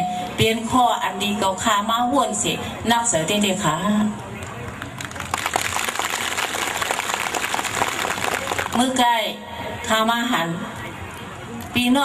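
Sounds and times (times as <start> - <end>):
audience applause: 4.6 - 8.8.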